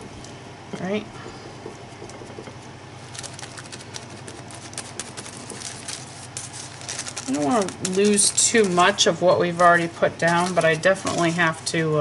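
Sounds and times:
low steady hum: 0.0s - 12.0s
sponge dabbing paint on paper: 1.2s - 11.7s.

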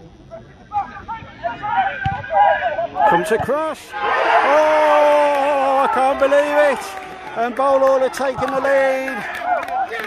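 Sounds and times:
people shouting: 0.7s - 3.3s, 3.9s - 7.4s.

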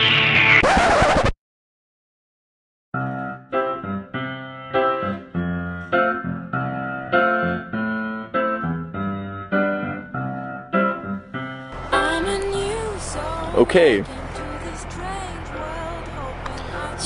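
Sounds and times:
piano chords: 3.0s - 17.0s.

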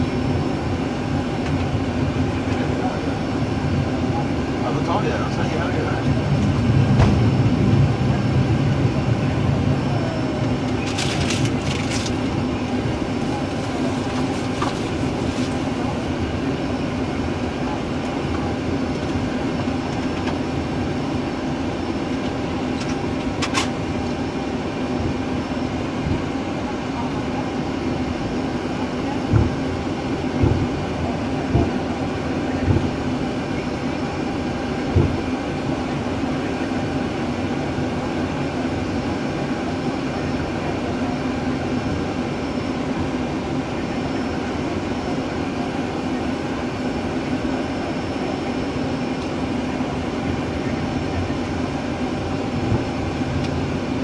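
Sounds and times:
aircraft engines idling: 0.0s - 54.0s.

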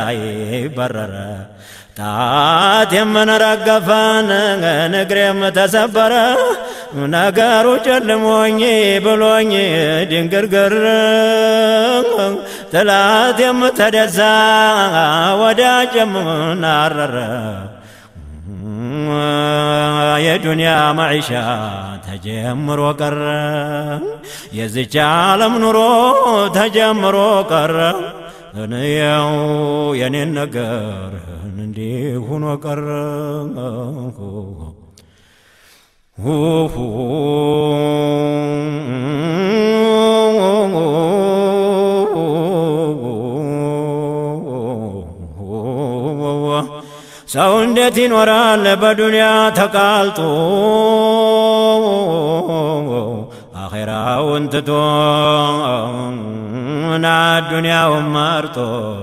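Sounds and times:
man chanting: 0.0s - 35.0s, 36.2s - 59.0s
breath: 1.5s - 2.0s, 6.5s - 7.0s, 12.4s - 12.8s, 17.7s - 18.3s, 24.2s - 24.6s, 28.2s - 28.6s, 34.9s - 36.2s, 46.8s - 47.3s, 53.3s - 53.6s.

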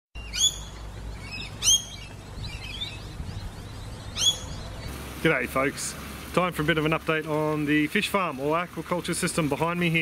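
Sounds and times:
bird chirping: 0.2s - 4.9s
bird calling: 0.2s - 5.0s.

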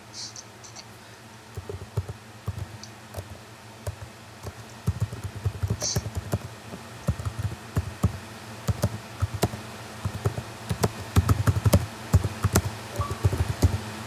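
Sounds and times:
typing on a computer keyboard: 1.5s - 13.8s.

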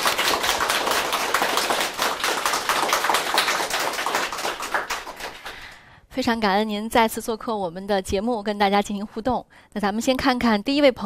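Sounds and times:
audience applauding: 0.0s - 5.8s.

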